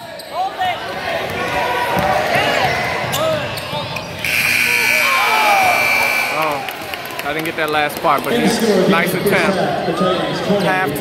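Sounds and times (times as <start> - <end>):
basketball play on court: 0.0 - 9.8
voices shouting: 0.3 - 7.0
scoreboard horn blast: 4.2 - 6.8.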